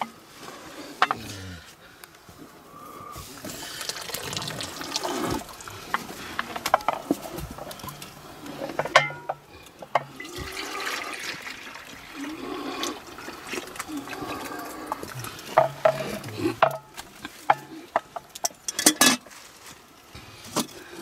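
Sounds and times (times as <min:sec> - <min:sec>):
liquid pouring from metal vessel: 0:03.6 - 0:05.8, 0:10.0 - 0:16.4
pots knocking and clanking: 0:06.4 - 0:08.1, 0:08.7 - 0:10.6, 0:15.5 - 0:19.2.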